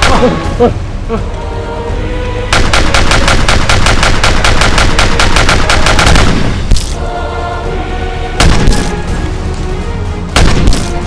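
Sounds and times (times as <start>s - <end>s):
rapid automatic gunfire: 2.5s - 6.7s.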